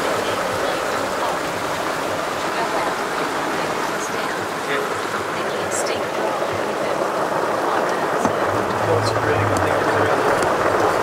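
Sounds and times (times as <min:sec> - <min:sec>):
heavy rain hiss: 0:00.0 - 0:11.0.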